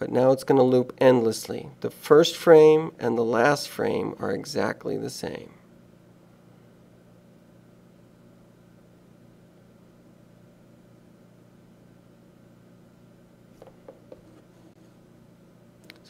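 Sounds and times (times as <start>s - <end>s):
low hum with hiss: 0.0s - 16.0s.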